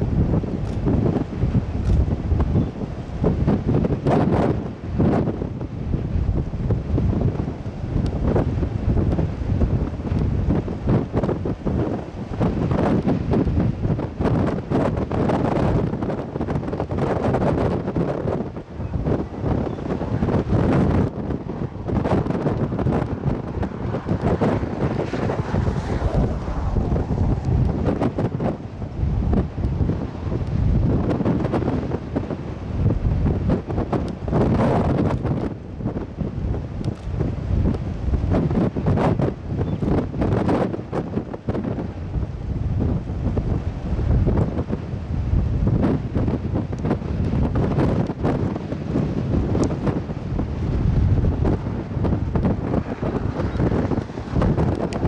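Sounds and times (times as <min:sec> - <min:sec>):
gusty wind on microphone: 0:00.0 - 0:55.0.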